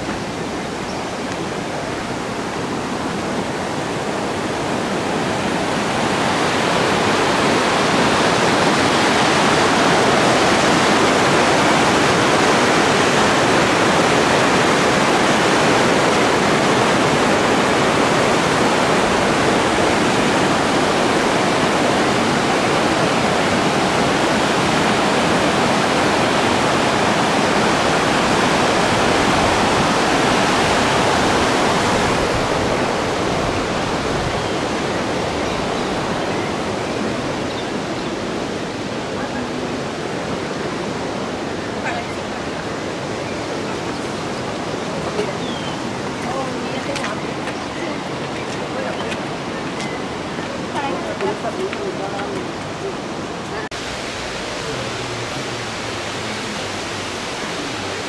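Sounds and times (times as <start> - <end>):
river water rushing over rocks: 0.0 - 58.0.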